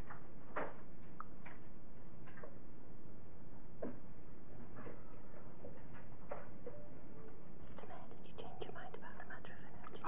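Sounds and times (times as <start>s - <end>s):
people whispering: 7.6s - 10.0s.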